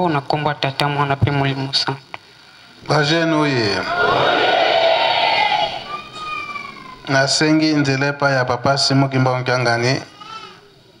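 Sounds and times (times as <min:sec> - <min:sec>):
crowd cheering: 0:03.3 - 0:07.2.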